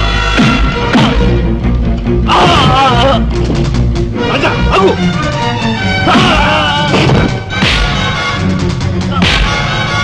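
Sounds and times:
sustained orchestral score: 0.0s - 10.0s.

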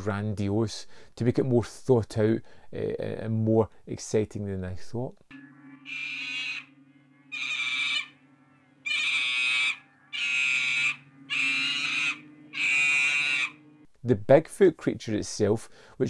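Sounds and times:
low steady hum: 2.4s - 14.5s.

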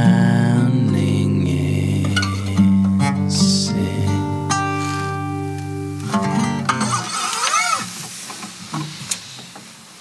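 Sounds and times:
acoustic guitar: 0.0s - 9.9s
steady hiss: 0.0s - 10.0s.

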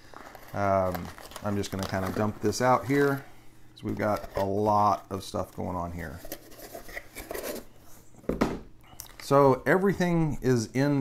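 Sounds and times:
plastic bags rustling: 0.0s - 3.3s
loud knock on table: 8.3s - 8.7s.

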